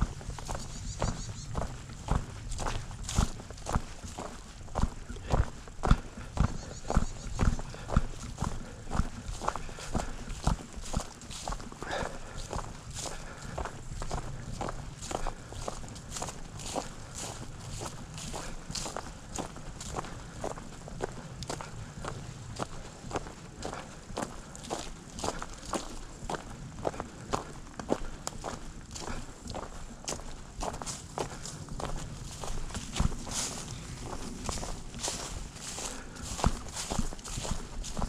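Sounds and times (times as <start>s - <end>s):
footsteps crunching dry leaves: 0.0s - 38.0s.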